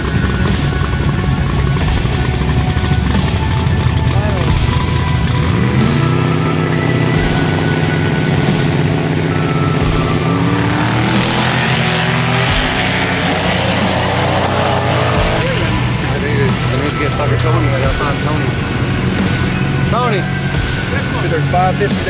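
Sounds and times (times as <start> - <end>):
drag car engines revving: 0.0 - 22.0.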